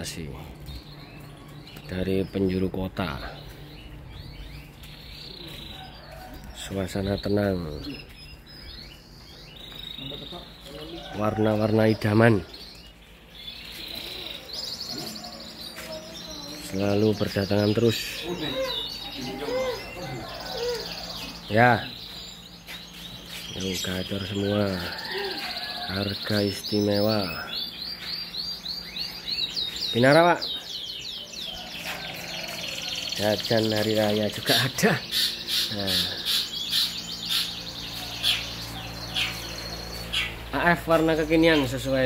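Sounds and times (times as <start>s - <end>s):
canaries singing: 0.0s - 42.0s
steady low hum: 0.0s - 42.0s.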